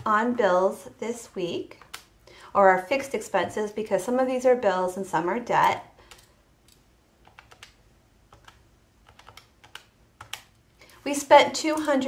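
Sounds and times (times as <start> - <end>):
calculator keys clicking: 7.2 - 10.6.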